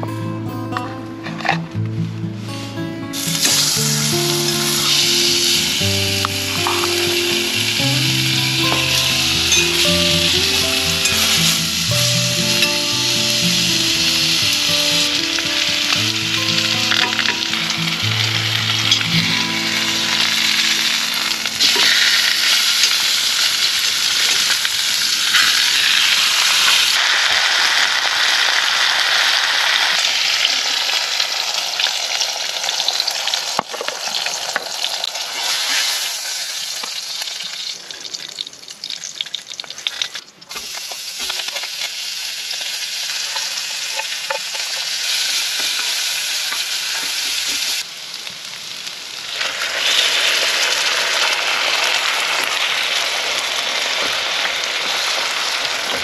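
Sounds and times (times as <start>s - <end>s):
background music: 0.0s - 22.9s
meat sizzling in a hot pan: 3.2s - 56.0s
softer frying sizzle: 3.2s - 56.0s.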